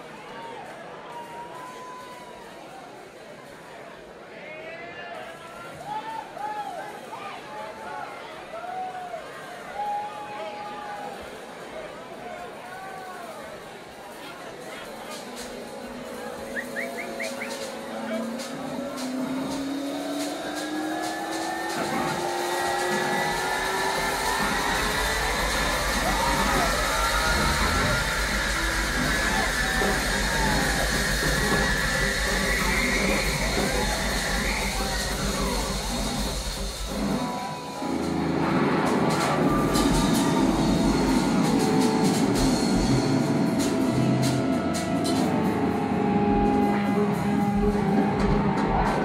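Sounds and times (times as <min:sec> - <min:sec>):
rock band jamming: 0:15.2 - 0:49.0
light cymbal ticks: 0:16.5 - 0:37.1
low bass: 0:17.6 - 0:49.0
sustained amplified guitar tone: 0:36.9 - 0:49.0.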